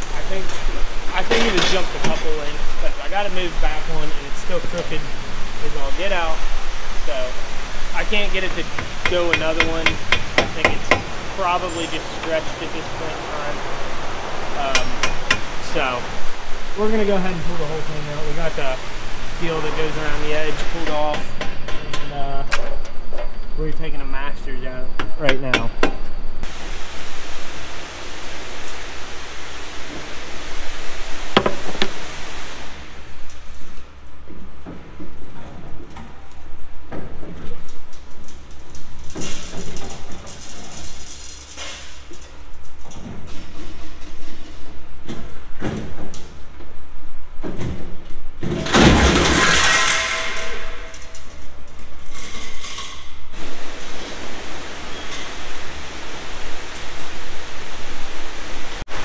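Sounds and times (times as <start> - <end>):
steady low hum: 0.0 - 59.0
loud rush of noise: 10.6 - 22.1.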